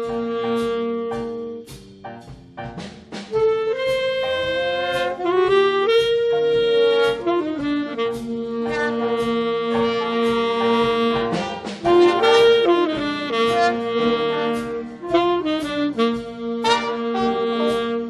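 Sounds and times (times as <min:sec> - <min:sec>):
drum strikes: 0:00.0 - 0:18.0
jazz big band playing chords: 0:00.0 - 0:18.0.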